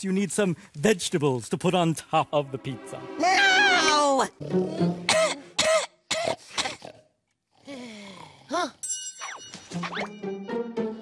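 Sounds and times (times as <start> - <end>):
man speaking: 0.0 - 3.2
background music: 1.7 - 5.9, 9.3 - 11.0.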